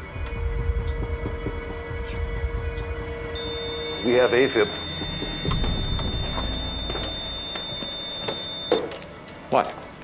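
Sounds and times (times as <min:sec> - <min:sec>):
patient monitor alarm tone: 0:02.9 - 0:08.9.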